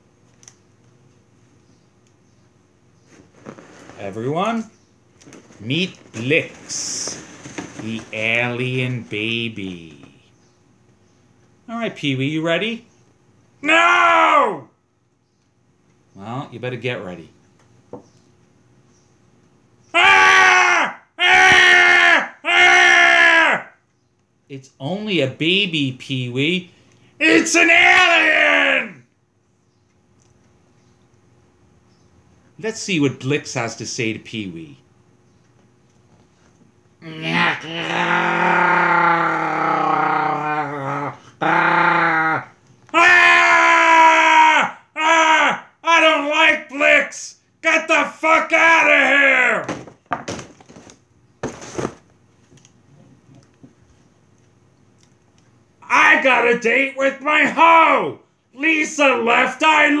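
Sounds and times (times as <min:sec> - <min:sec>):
man screaming in high voice: 0:13.6 - 0:14.8, 0:19.9 - 0:23.8, 0:27.2 - 0:29.0, 0:37.0 - 0:49.7, 0:55.8 - 1:00.0
voice-like groans and wails: 0:37.0 - 0:45.7.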